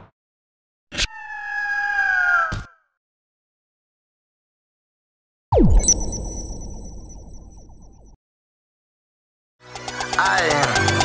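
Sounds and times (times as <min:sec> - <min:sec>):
held tone sinking in pitch: 0:05.6 - 0:08.1.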